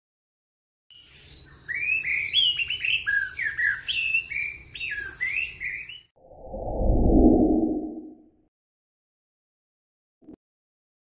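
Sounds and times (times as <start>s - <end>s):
birdsong whistles and trills: 0.9s - 6.2s.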